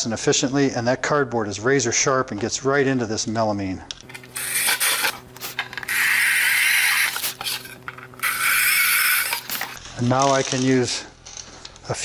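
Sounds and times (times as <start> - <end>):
cordless drill motor whir: 4.1 - 9.8
drill bit rasping into board: 4.1 - 9.8.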